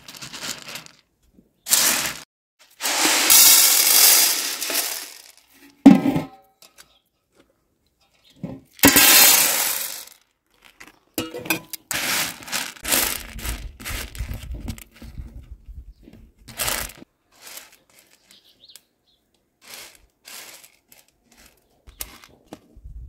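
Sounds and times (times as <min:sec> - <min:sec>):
dried beans rattling on metal tray: 0:00.0 - 0:01.0, 0:01.7 - 0:06.2, 0:08.7 - 0:15.0, 0:16.5 - 0:18.8, 0:19.6 - 0:22.4
beans clicking spread by hand: 0:01.7 - 0:05.4, 0:08.8 - 0:10.9, 0:11.9 - 0:14.8, 0:16.5 - 0:18.9, 0:19.6 - 0:22.4
metal tray clanging: 0:02.8 - 0:06.4, 0:11.2 - 0:12.8.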